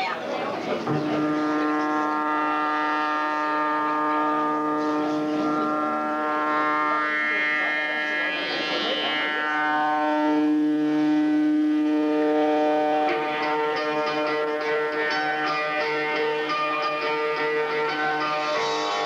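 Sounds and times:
rock band droning note: 0.8 - 19.0.

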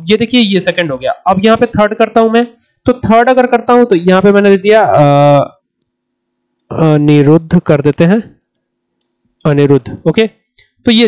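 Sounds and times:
man speaking: 0.0 - 5.5, 6.7 - 8.3, 9.5 - 10.3.

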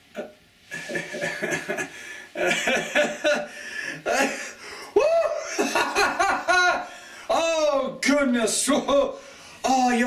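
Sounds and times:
young man laughing: 0.7 - 7.0.

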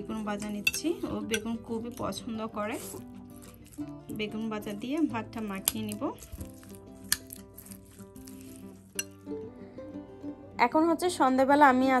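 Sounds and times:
soft background music: 0.0 - 12.0
metal spoon scraping ceramic bowl: 0.4 - 3.8, 5.6 - 9.3.

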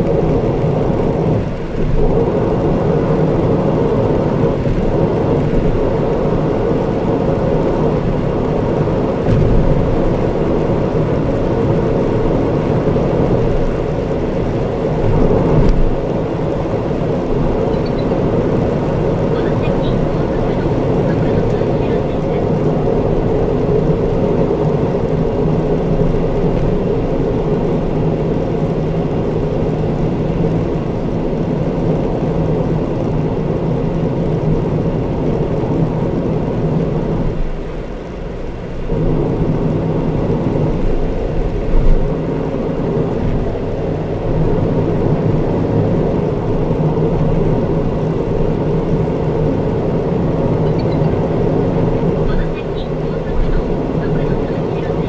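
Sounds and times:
low engine hum: 0.0 - 55.0
tyres droning on asphalt: 0.0 - 55.0.

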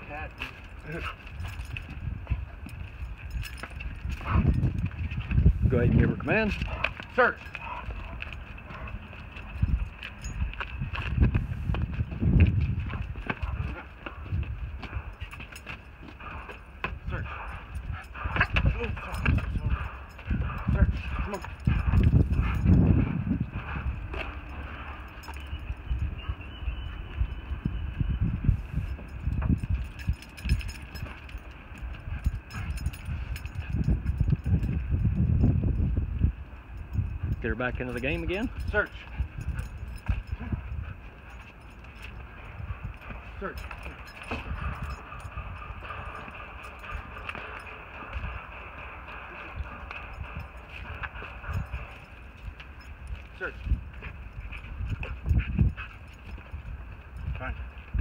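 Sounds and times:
footsteps on asphalt: 6.5 - 33.3, 38.5 - 58.0.

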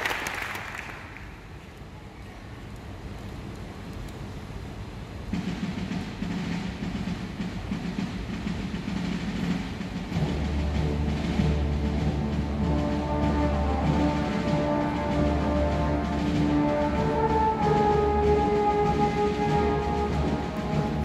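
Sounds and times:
rolling drum rumble: 3.0 - 21.0
brass low chords: 10.2 - 21.0.

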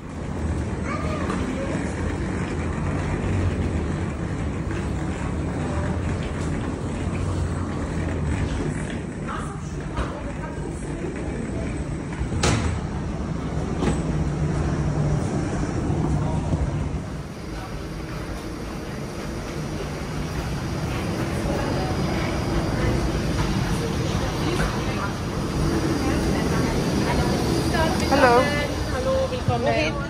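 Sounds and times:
faint voices: 0.7 - 13.8, 15.3 - 30.0.

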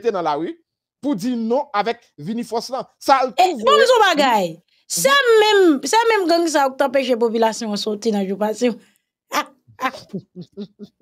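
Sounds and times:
woman laughing heartily: 9.9 - 11.0.

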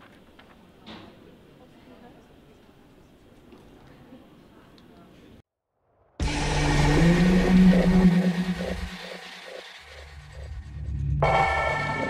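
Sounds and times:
faint electronic pulses: 6.2 - 12.0
low electronic drone: 6.2 - 12.0.

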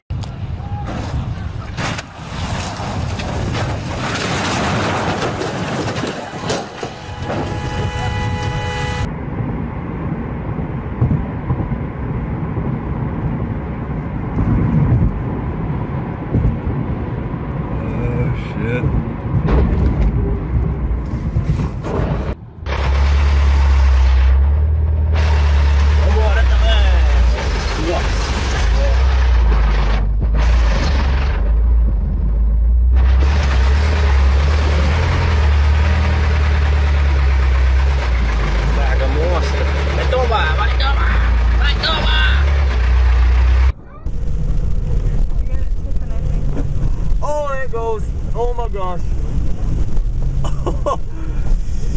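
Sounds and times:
noisy rumble: 0.1 - 51.9
vehicle engine droning: 0.1 - 51.9.

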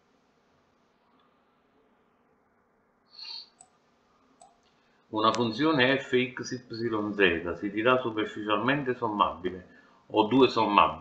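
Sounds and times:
faint clicks: 4.4 - 5.5.

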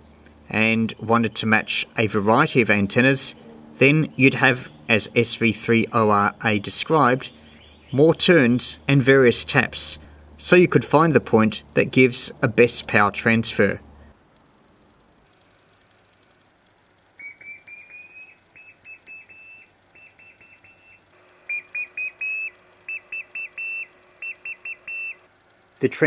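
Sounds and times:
morse code beeping: 17.3 - 25.3.

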